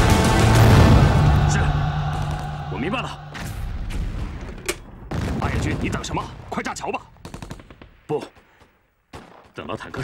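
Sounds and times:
machine-gun fire: 0:07.2 - 0:08.0.

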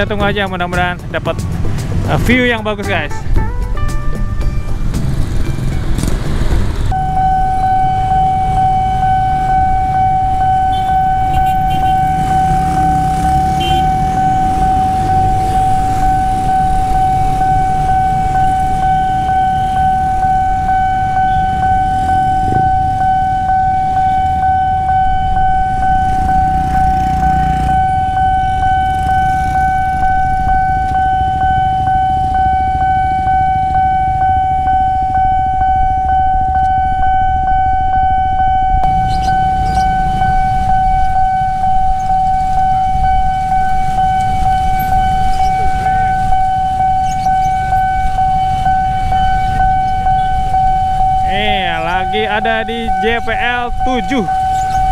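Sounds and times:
road traffic rumble: 0:00.0 - 0:54.9
level crossing alarm tone: 0:06.9 - 0:54.9.

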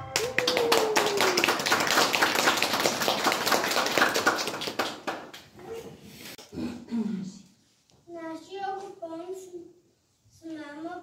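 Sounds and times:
audience applause: 0:00.0 - 0:05.3.

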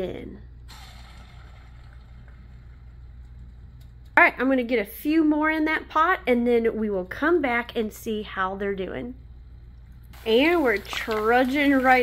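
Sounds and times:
low hum: 0:00.4 - 0:04.5
food sizzling in hot oil: 0:10.2 - 0:12.0.

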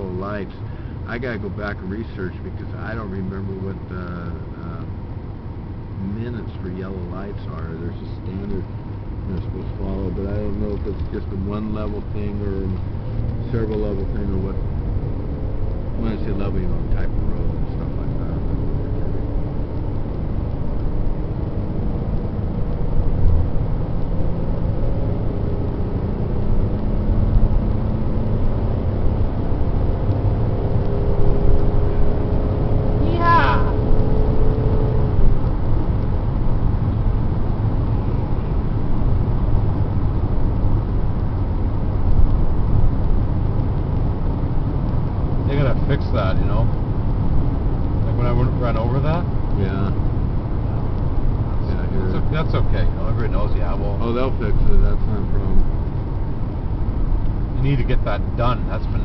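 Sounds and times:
car cabin engine and road rumble: 0:00.0 - 0:59.0.

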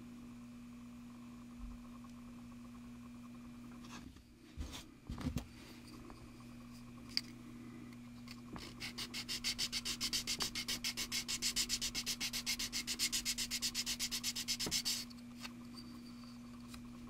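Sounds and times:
plastic part sanding strokes: 0:08.6 - 0:15.1.

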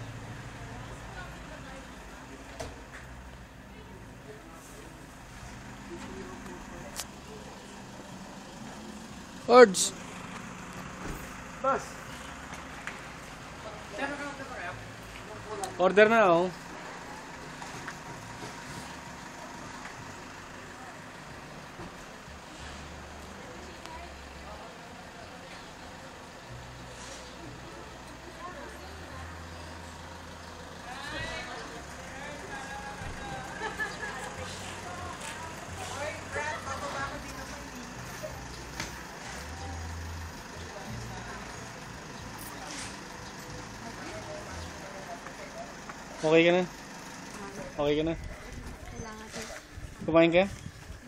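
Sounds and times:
engine idling: 0:00.0 - 0:51.0
people's voices: 0:00.0 - 0:51.0
street background hum: 0:00.0 - 0:51.0.

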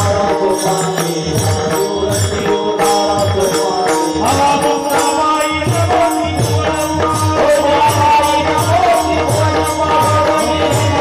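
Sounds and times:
drum beat: 0:00.0 - 0:11.0
small hand cymbals: 0:00.0 - 0:11.0.

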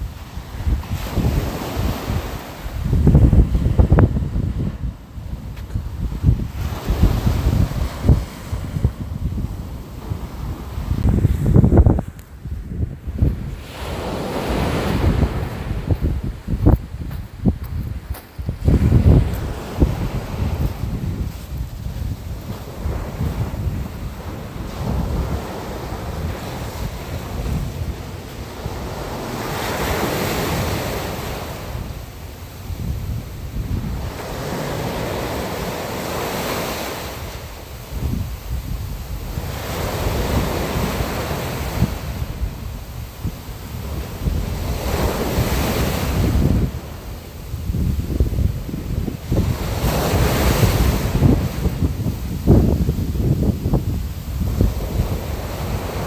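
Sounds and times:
low wind rumble: 0:00.0 - 0:56.0
sea waves washing in: 0:00.0 - 0:56.0.

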